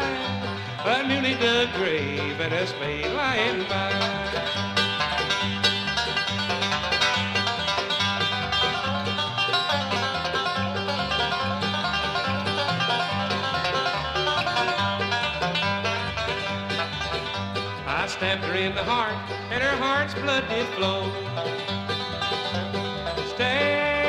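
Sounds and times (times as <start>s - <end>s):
rapid banjo lead: 0.0s - 24.0s
strummed guitar: 0.0s - 24.0s
walking bass line: 0.0s - 24.0s.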